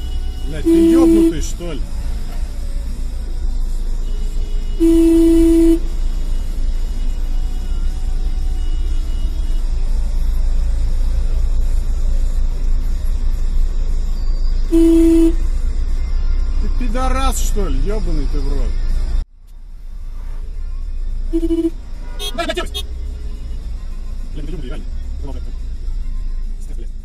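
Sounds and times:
car horn honking: 0:00.0 - 0:02.5, 0:03.6 - 0:09.8, 0:14.6 - 0:15.6, 0:21.3 - 0:23.7
traffic rumble inside car: 0:00.0 - 0:27.0.

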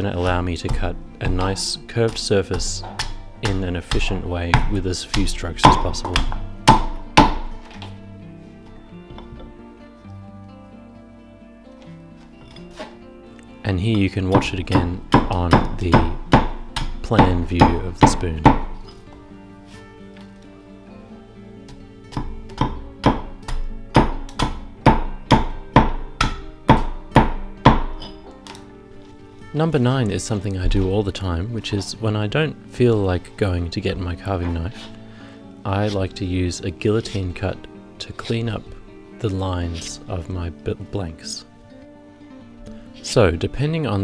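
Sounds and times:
axe chopping wood: 0:00.0 - 0:08.0, 0:14.3 - 0:19.0, 0:21.7 - 0:28.6
background music: 0:00.0 - 0:44.0.

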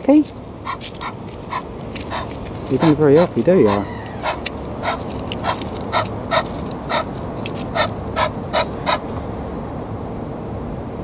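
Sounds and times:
goose making husky calls: 0:00.6 - 0:07.1, 0:07.7 - 0:09.1.

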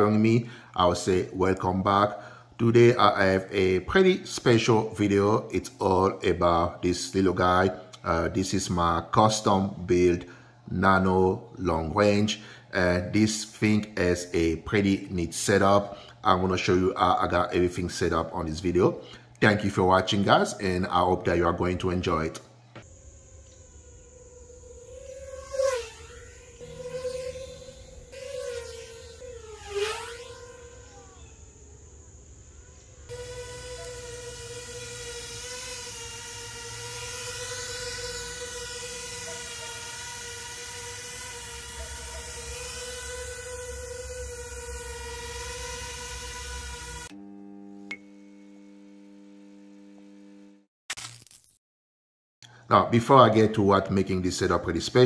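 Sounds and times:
drone motors whining: 0:22.8 - 0:47.3.

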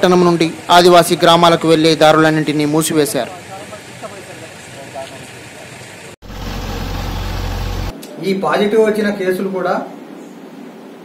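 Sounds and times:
distant voices: 0:00.0 - 0:07.9
tractor engine droning: 0:05.8 - 0:07.9.

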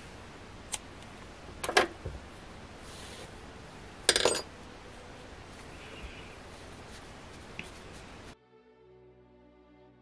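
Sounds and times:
metal hook clattering: 0:04.1 - 0:04.5.

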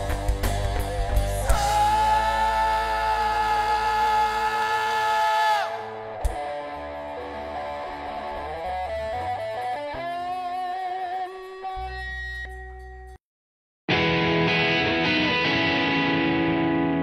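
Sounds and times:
picked electric guitar line: 0:00.0 - 0:13.1, 0:13.9 - 0:17.0
electric guitar sustained chord: 0:13.9 - 0:17.0.

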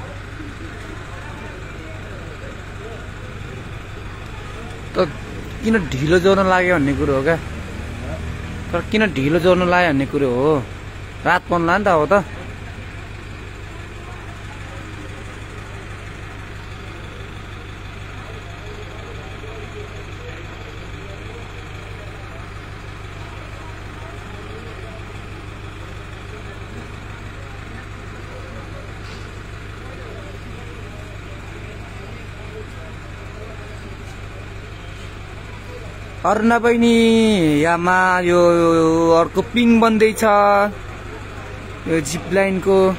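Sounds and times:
crane engine idling: 0:00.0 - 0:42.9
faint voices: 0:00.0 - 0:42.9.

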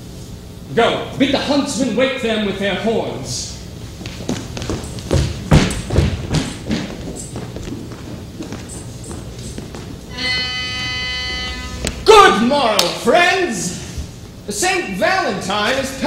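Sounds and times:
footsteps on stage floor: 0:03.8 - 0:12.2
horn long steady note: 0:10.1 - 0:12.6.

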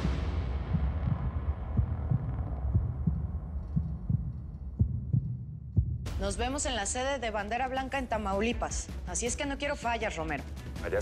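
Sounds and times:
low rumbling drone: 0:00.0 - 0:06.2
soft low thumps: 0:00.0 - 0:06.6.

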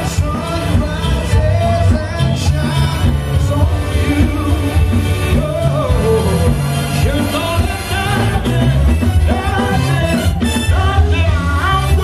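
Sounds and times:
heavy bass beat: 0:00.0 - 0:12.0
live band music: 0:00.0 - 0:12.0.

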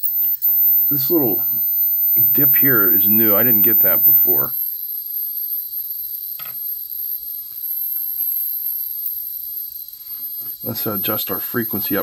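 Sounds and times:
high-pitched electronic whine: 0:00.0 - 0:12.0.

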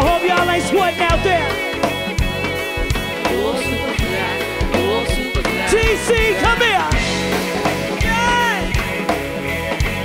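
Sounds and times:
electric guitar: 0:00.0 - 0:10.0
live band music: 0:00.0 - 0:10.0.

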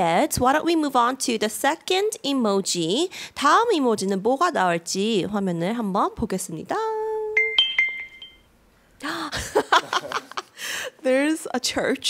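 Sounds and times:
bright chime: 0:07.4 - 0:08.5.

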